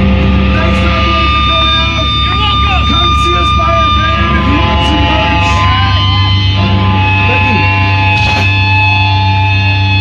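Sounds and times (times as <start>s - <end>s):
amplifier hum: 0.0s - 10.0s
low rumble: 0.0s - 10.0s
people talking: 0.5s - 6.0s, 7.2s - 7.7s.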